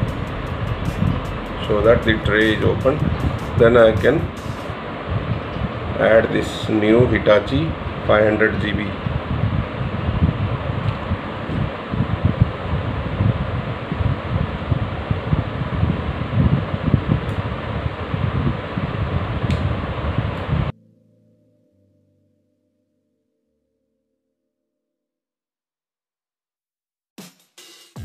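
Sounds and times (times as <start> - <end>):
faint music: 0.0 - 9.0
low rumble: 0.0 - 20.7
steady rushing noise: 0.0 - 20.7.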